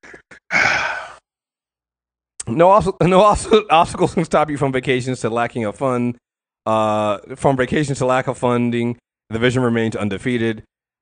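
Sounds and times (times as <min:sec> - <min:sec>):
man sighing: 0:00.0 - 0:01.2.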